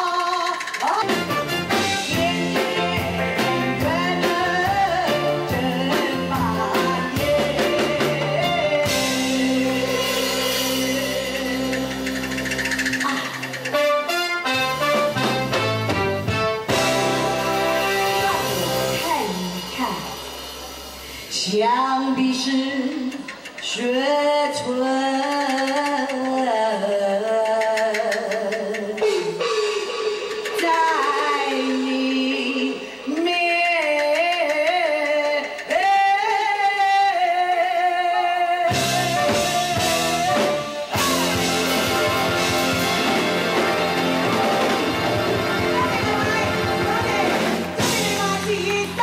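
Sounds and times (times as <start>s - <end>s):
live band playing pop song: 0.0s - 49.0s
woman singing into a microphone: 2.0s - 12.0s, 21.3s - 29.4s, 30.4s - 41.8s, 45.7s - 49.0s.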